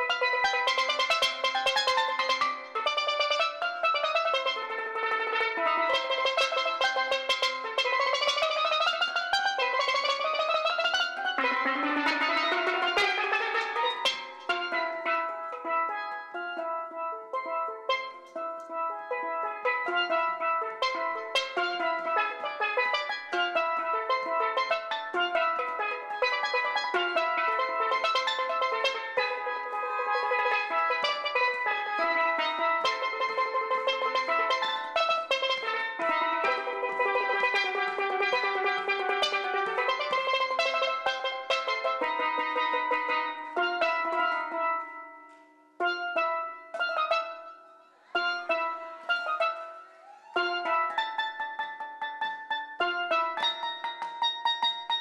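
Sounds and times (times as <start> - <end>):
steelpan melody: 0.0 - 55.0.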